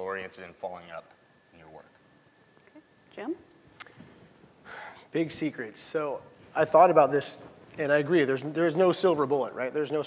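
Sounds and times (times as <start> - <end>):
soft breath: 4.0 - 5.1
man talking: 5.1 - 10.0.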